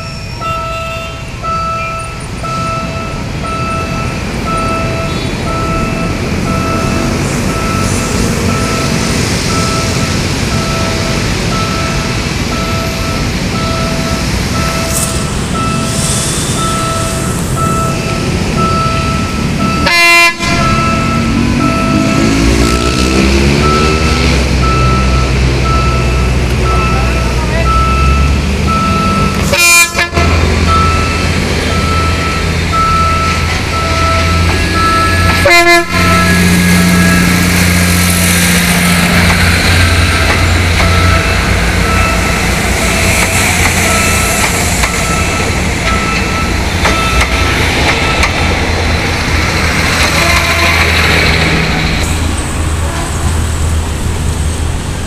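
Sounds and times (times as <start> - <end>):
electronic warning beep: 0.0 - 19.9, 20.6 - 29.4, 30.6 - 35.4, 40.0 - 49.3
diesel railcar engine rumble: 0.0 - 55.0.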